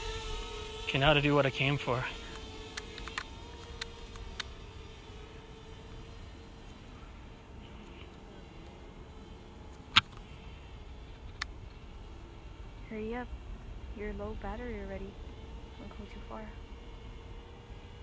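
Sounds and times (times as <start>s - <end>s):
drone propellers humming: 0.0s - 18.0s
sharp clicks: 2.7s - 4.5s.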